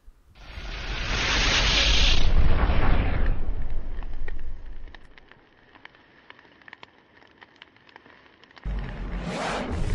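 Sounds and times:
faint ember crackles: 0.0 - 9.9
fire burst rumble: 0.4 - 5.2, 8.6 - 9.9.

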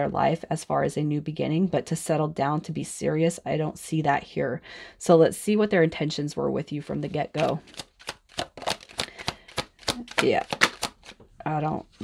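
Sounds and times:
cards being shuffled: 7.3 - 11.3.

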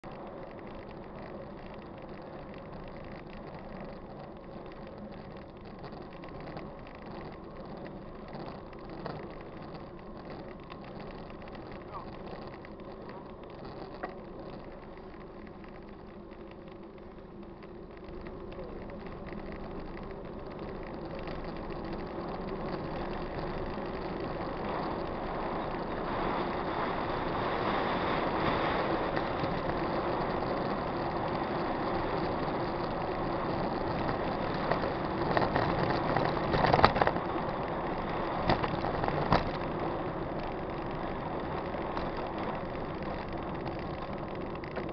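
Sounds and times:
bike tyres rolling on asphalt: 0.0 - 44.9
wind rushing over microphone: 18.8 - 44.9.

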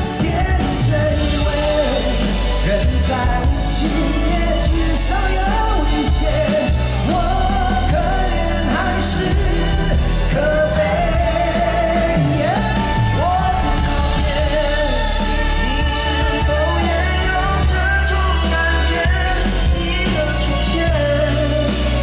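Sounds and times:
live pop-rock band: 0.0 - 22.0
man singing long held notes: 0.0 - 22.0.

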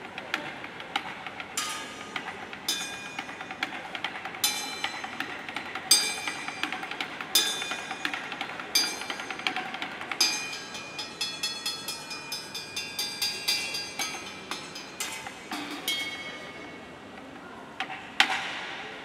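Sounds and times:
kitchen knives clinking: 10.2 - 16.7.

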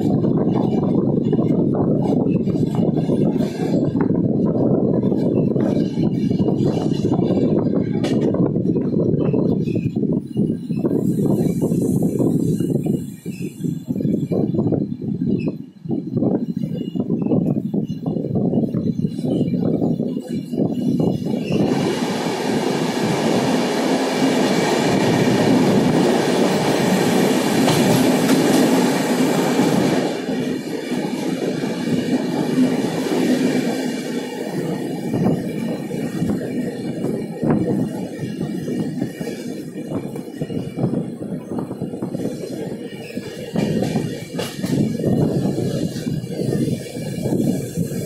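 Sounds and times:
train wheels rumbling on rails: 0.0 - 48.0.

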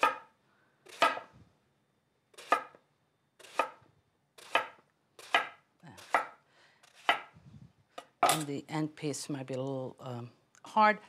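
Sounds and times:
knife cutting on wooden board: 2.3 - 2.8, 3.4 - 3.8, 4.4 - 7.3.

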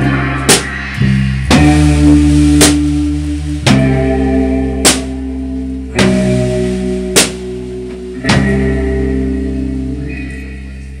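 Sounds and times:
rock band chord ringing out: 0.0 - 11.0.

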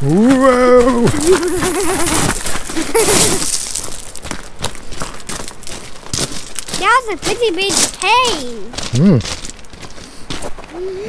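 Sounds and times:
man laughing: 0.3 - 3.5
crackling and rustling: 1.0 - 9.9.

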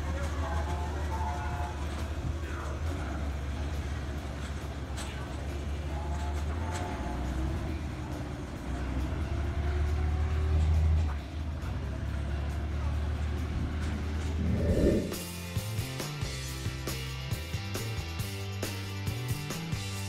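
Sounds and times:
diesel locomotive engine rumbling: 0.0 - 17.9
background music with steady beat: 15.1 - 20.0.

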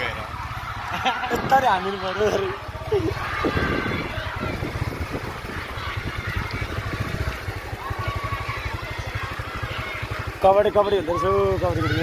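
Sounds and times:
faint voices: 0.0 - 12.0
vehicle engine idling: 0.0 - 12.0.

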